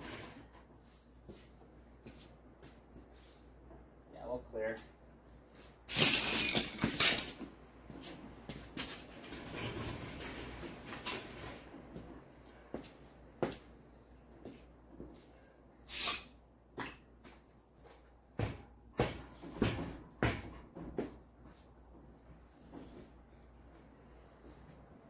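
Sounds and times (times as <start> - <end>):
quiet rattling and shuffling: 0.0 - 15.7, 16.6 - 25.0
metal clattering and scraping: 5.9 - 7.4.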